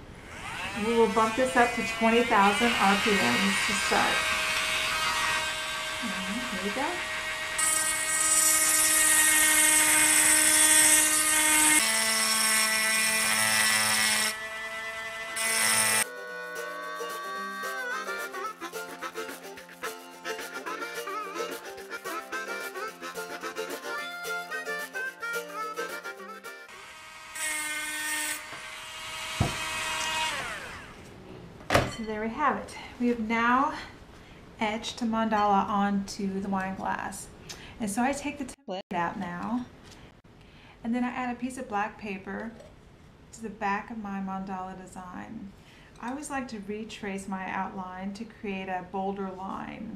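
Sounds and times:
rotary tool etching glass: 0.4s - 16.1s
background music: 15.5s - 26.7s.

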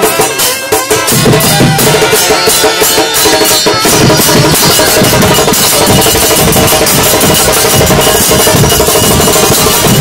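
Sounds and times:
bass drums beating: 1.0s - 2.5s, 3.4s - 10.0s.

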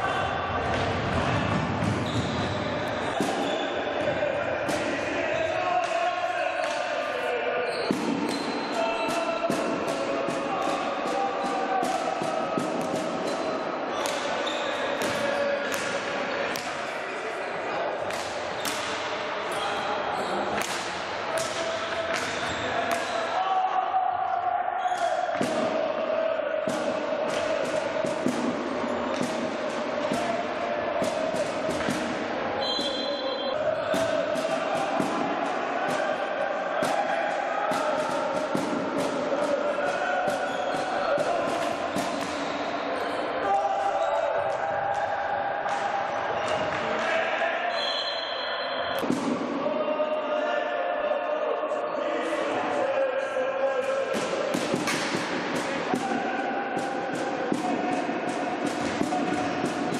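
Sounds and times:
voices echoing in hall: 0.0s - 59.9s
hockey sticks clacking on ball: 53.9s - 56.2s.

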